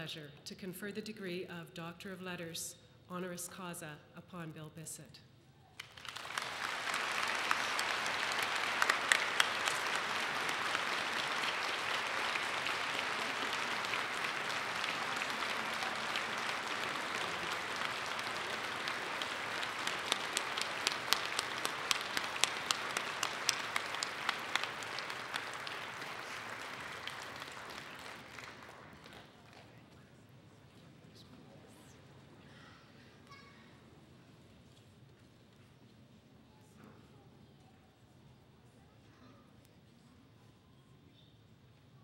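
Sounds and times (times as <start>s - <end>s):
audience applause: 5.8s - 29.8s.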